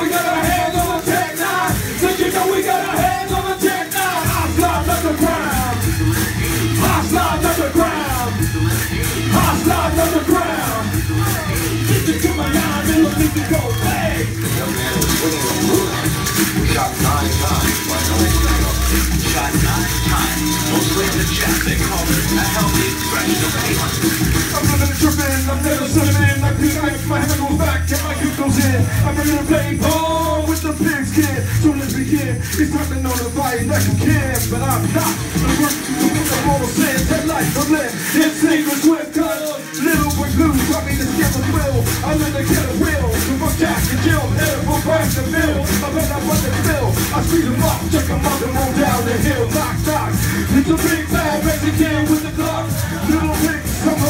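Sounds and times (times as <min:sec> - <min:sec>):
hand-held rattles shaken: 0:00.0 - 0:54.0
hip hop beat with heavy bass: 0:00.0 - 0:54.0.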